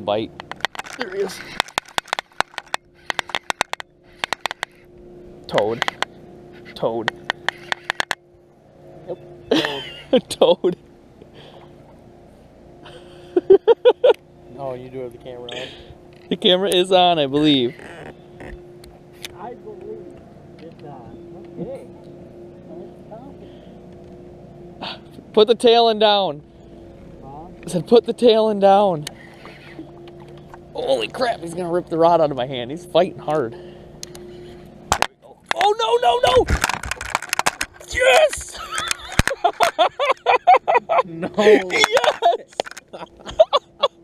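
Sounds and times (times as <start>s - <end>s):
faint steady hum: 0.0s - 44.0s
fishing reel clicking: 0.4s - 4.9s, 5.7s - 8.2s.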